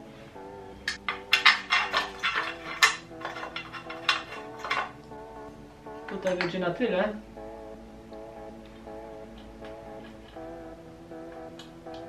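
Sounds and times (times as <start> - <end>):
background music: 0.0 - 12.0
metal parts clinking: 0.9 - 5.1.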